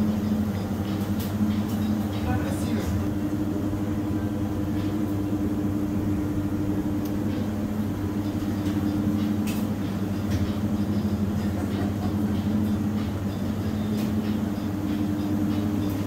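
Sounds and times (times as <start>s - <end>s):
machine hum with low tones: 0.0s - 16.0s.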